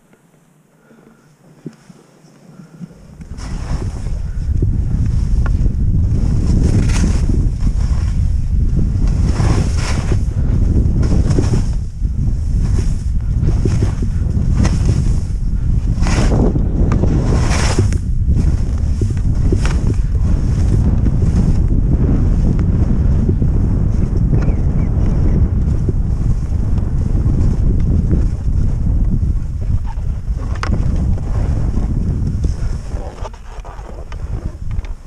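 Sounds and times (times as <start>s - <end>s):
wind buffeting microphone: 2.6s - 35.0s
sharp ski scrape: 3.3s - 4.2s, 6.2s - 8.3s, 9.0s - 10.3s, 12.4s - 21.6s
skis hissing through snow: 3.3s - 4.2s, 9.0s - 10.3s, 17.2s - 21.5s.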